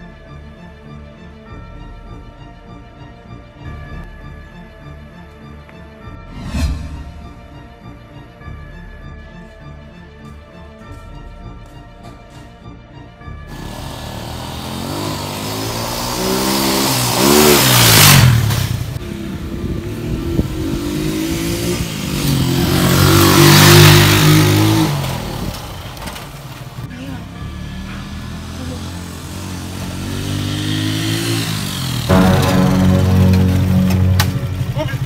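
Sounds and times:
small motorcycle engine revving: 13.5s - 26.4s, 27.5s - 32.2s.

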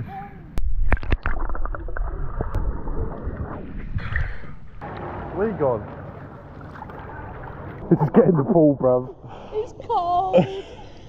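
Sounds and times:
muffled underwater wash: 0.6s - 9.5s
bubbling clicks: 0.8s - 4.3s
pool water splashing: 4.8s - 9.2s.

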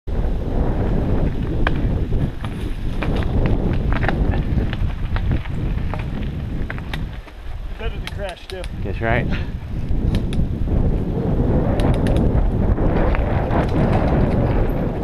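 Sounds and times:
wind buffeting microphone: 0.1s - 15.0s
bike clicks and rattles: 1.2s - 11.0s, 11.7s - 15.0s
person talking: 7.8s - 9.4s.

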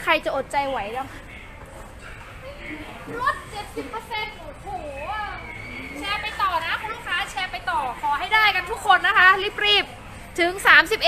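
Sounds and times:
woman speaking: 0.0s - 1.2s, 3.8s - 11.0s
hubbub of a busy shop: 0.0s - 11.0s.

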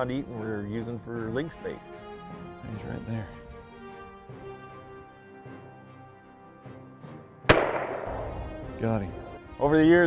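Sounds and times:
background music: 0.0s - 10.0s
pistol shot: 7.5s - 8.5s.

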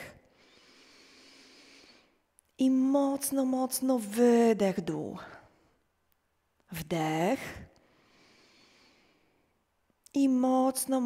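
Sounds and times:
soft breath in: 0.0s - 2.2s, 7.8s - 9.5s.

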